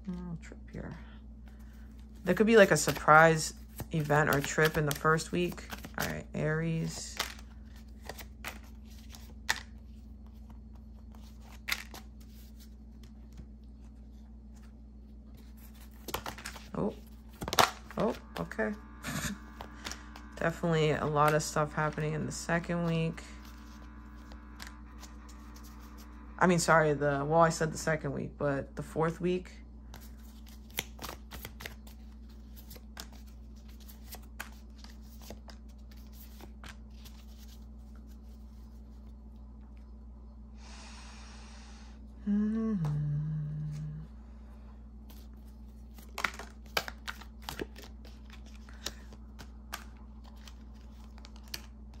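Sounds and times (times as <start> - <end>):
low steady hum: 0.0 - 52.0
cards slapping and rustling: 1.5 - 26.2, 29.9 - 39.0, 45.1 - 52.0.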